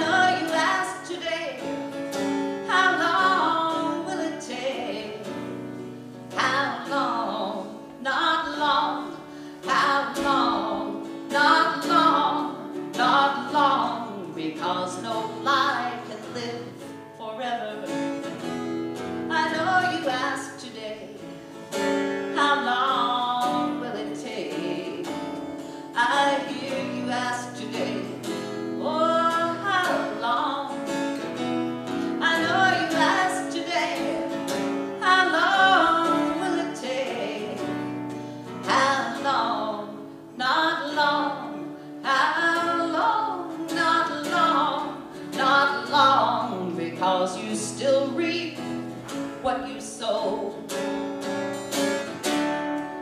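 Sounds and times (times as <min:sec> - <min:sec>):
acoustic guitar strumming: 0:00.0 - 0:53.0
woman singing folk song: 0:00.0 - 0:53.0.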